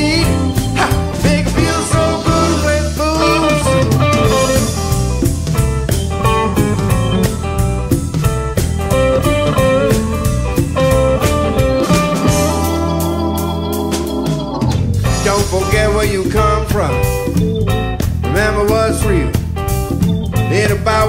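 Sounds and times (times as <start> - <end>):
electric guitar lead lines: 0.0 - 18.2
bass line: 0.0 - 21.0
drum kit steady beat: 0.0 - 21.0.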